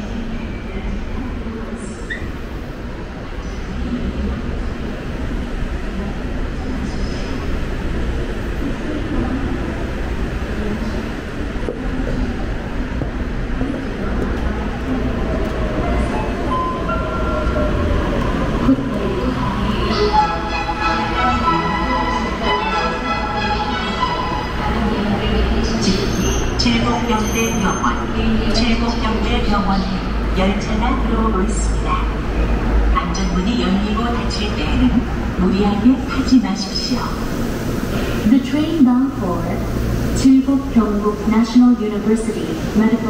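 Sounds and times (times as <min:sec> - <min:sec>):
monorail car rumbling: 0:00.0 - 0:43.0.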